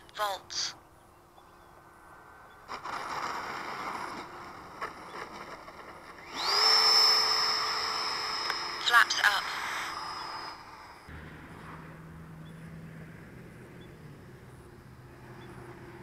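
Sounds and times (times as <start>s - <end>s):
model jet fan whine: 2.5s - 16.0s.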